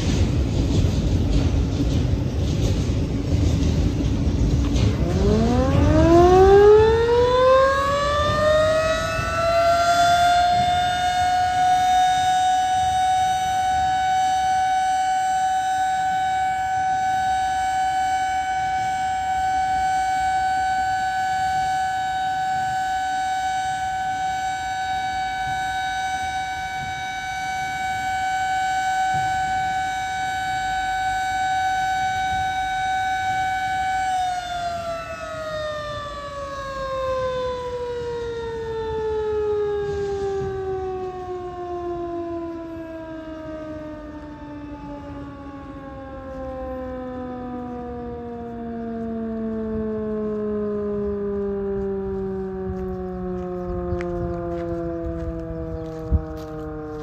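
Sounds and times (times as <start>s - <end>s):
freight train cars rumbling: 0.0s - 44.4s
siren wailing: 0.0s - 57.0s.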